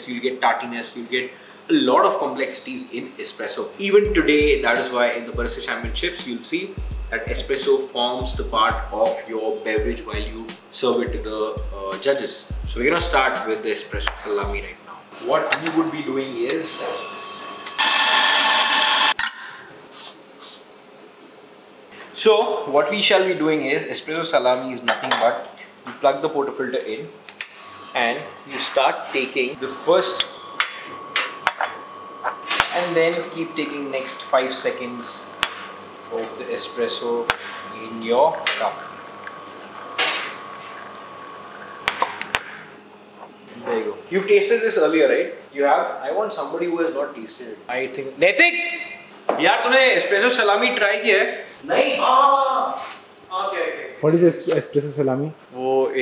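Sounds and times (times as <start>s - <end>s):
espresso machine running: 15.2s - 19.2s, 27.5s - 42.3s.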